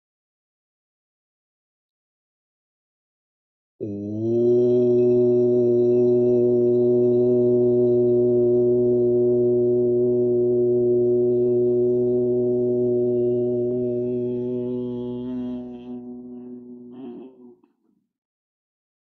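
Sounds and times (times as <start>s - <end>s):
man chanting low note: 3.8s - 17.7s.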